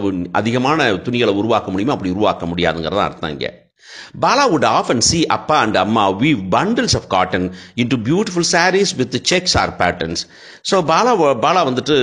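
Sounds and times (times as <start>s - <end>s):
person speaking: 0.0s - 12.0s
quick intake of breath: 3.8s - 4.2s, 10.3s - 10.6s.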